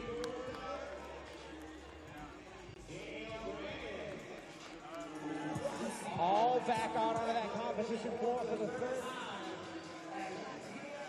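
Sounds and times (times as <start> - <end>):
music with vocals over loudspeakers: 0.0 - 11.0.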